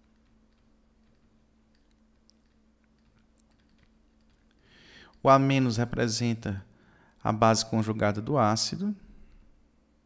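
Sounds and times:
stylus clicking on tablet: 0.0s - 5.2s
faint low hum: 0.0s - 10.0s.

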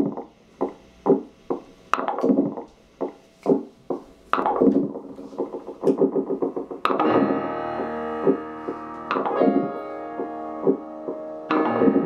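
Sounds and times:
synthesizer music: 4.4s - 12.0s.

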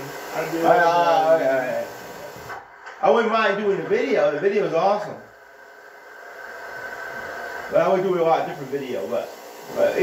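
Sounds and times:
faint hissing drone: 0.0s - 10.0s.

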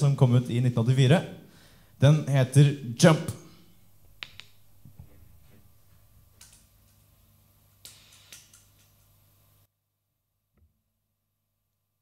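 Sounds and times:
faint low hum: 0.0s - 9.7s.

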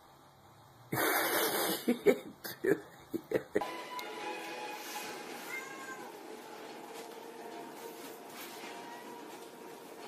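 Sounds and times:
cat meowing: 5.4s - 6.2s.

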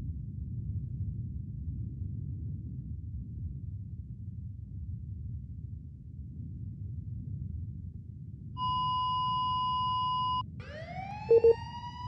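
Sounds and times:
short low beeps: 8.6s - 12.0s
siren winding up: 8.6s - 12.0s
steady electronic beep tone: 8.6s - 12.0s.

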